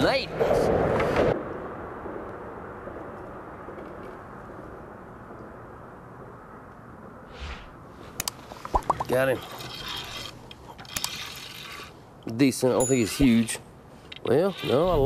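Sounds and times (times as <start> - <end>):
low outdoor rumble: 0.3 - 9.4.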